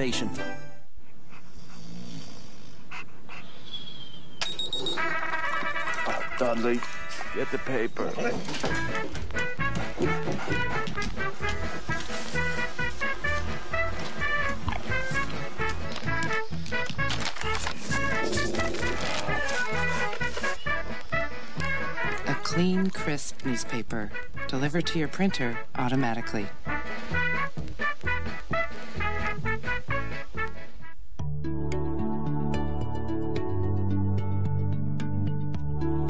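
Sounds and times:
dog breathing and sniffing: 1.0s - 4.0s, 8.4s - 20.6s
high electronic beep: 4.4s - 5.0s.

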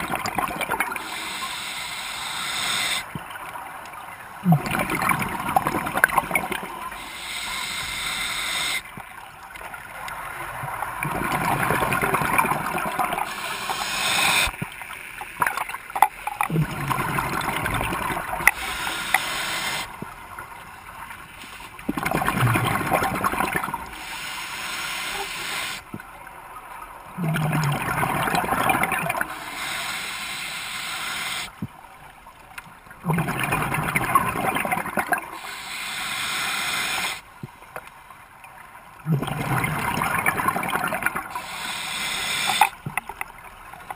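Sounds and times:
gurgling exhaled bubbles: 0.0s - 1.4s, 4.4s - 7.4s, 11.0s - 14.6s, 16.4s - 20.0s, 21.8s - 24.1s, 27.2s - 29.6s, 33.0s - 35.4s, 39.0s - 41.6s
regulator inhalation hiss: 0.9s - 3.1s, 6.9s - 8.8s, 13.1s - 14.5s, 18.5s - 19.9s, 23.8s - 25.8s, 29.2s - 31.5s, 35.4s - 37.2s, 41.3s - 42.8s.

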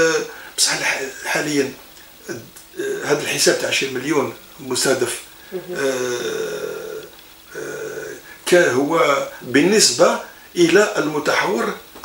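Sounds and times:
man's hesitation sound: 5.5s - 9.6s.

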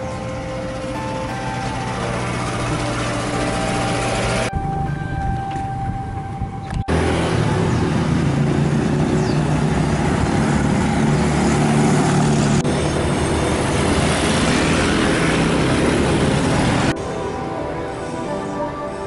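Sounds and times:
car engines on road: 0.0s - 19.0s
motorcycle engines: 0.0s - 19.0s.

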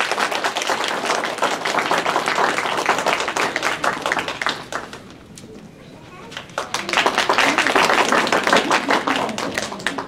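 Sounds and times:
small audience applauding: 0.0s - 5.5s, 6.2s - 10.0s.

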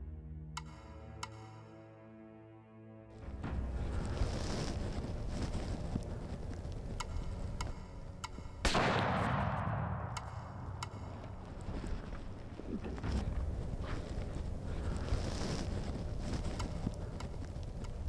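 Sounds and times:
rifle shot echoing through woods: 8.6s - 12.0s.

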